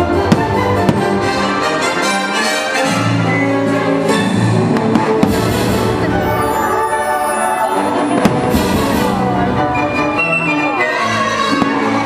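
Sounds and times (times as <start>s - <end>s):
orchestral music: 0.0s - 12.0s
fireworks bursting: 4.7s - 9.4s.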